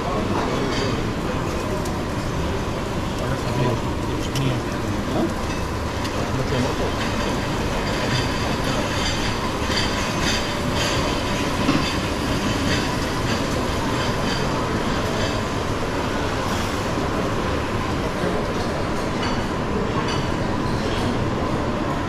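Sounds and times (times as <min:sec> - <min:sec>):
restaurant rumbling hum: 0:00.0 - 0:22.0
crockery and cutlery clinking: 0:00.1 - 0:01.6, 0:03.5 - 0:15.4.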